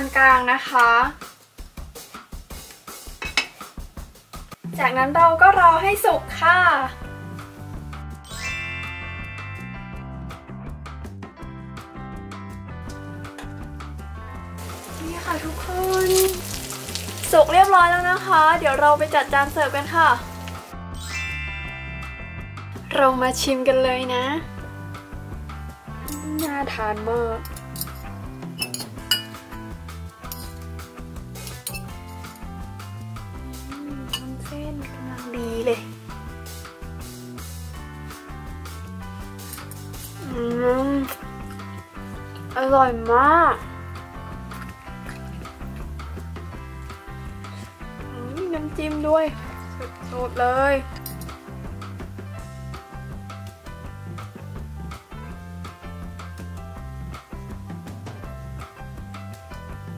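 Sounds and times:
glass lid clinking on metal pot: 3.2 - 3.6, 28.6 - 29.4
metal cutlery clinking on clay pot: 3.2 - 3.6, 26.0 - 26.6, 27.4 - 29.4, 30.2 - 30.7, 31.4 - 32.5, 34.1 - 34.4, 39.4 - 40.2, 50.9 - 51.4.

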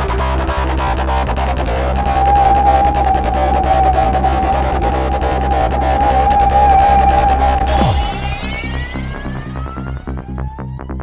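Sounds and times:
electronic trance music: 0.0 - 11.0.

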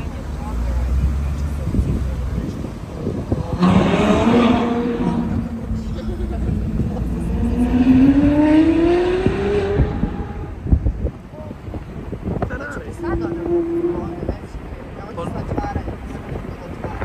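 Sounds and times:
car engine accelerating past: 3.3 - 10.7.

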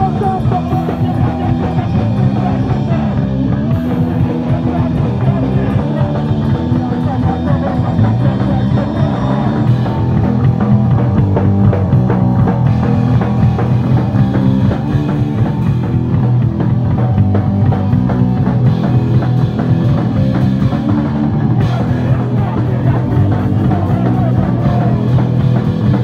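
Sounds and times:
drum kit: 0.0 - 26.0
electric guitars: 0.0 - 26.0.

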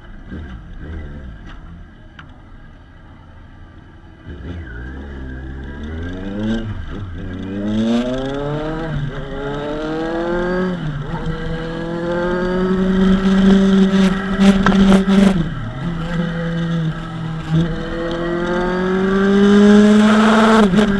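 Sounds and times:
motorcycle engine accelerating: 4.0 - 20.9.

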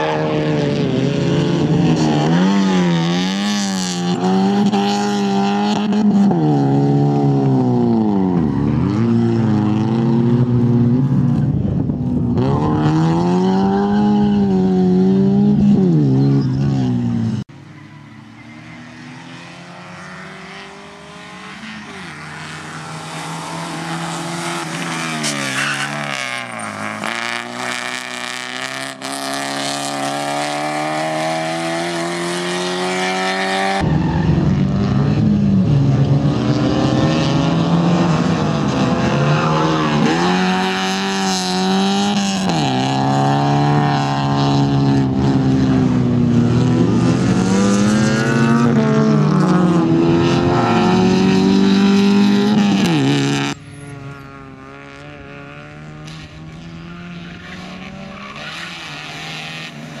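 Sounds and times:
rally car engine revving: 0.0 - 17.4, 18.4 - 60.0.

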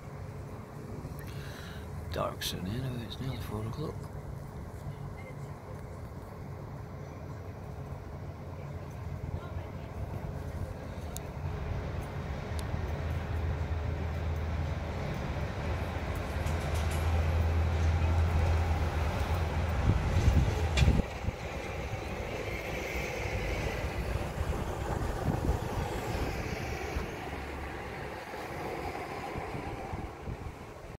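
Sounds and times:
background traffic noise: 0.0 - 31.0
vehicle engine drone: 0.0 - 31.0.

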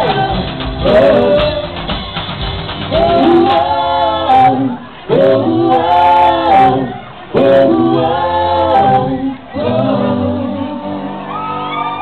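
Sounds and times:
group of people singing: 0.0 - 2.0, 2.9 - 12.0.

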